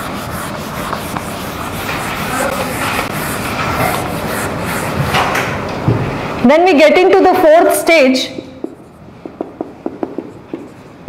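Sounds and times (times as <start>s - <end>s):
marker writing on whiteboard: 0.0s - 5.6s, 8.2s - 11.0s.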